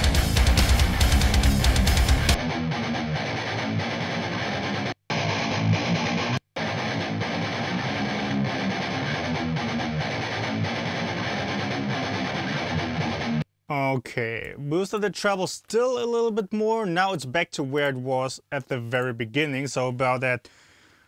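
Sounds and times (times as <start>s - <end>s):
electric guitar riff through amp: 0.0s - 13.4s.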